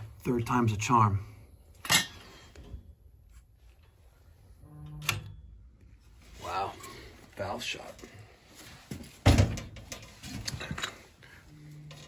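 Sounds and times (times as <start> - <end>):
metal tools clanking on piping: 1.7 - 2.9.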